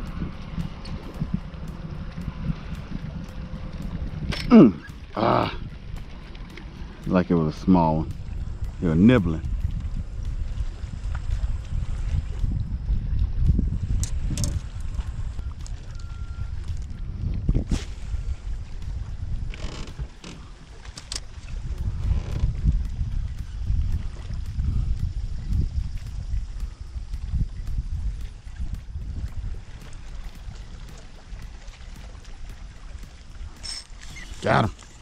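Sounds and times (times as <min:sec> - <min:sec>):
water lapping against boat hull: 0:00.0 - 0:35.0
wind rumbling on microphone: 0:00.0 - 0:35.0.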